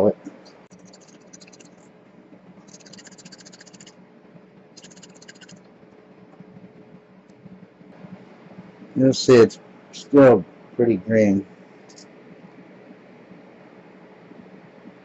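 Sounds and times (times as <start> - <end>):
faint steady hum: 0.0 - 15.0
glass funnel rattling: 4.8 - 5.6.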